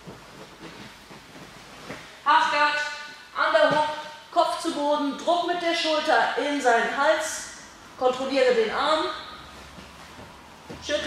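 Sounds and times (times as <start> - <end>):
rustling of bodies on mat: 0.0 - 4.1, 7.8 - 11.0
steady background hiss: 0.0 - 11.0.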